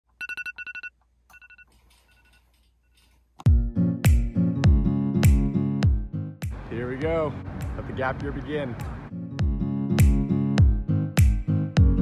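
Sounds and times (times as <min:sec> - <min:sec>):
alarm clock beeping: 0:00.2 - 0:02.5.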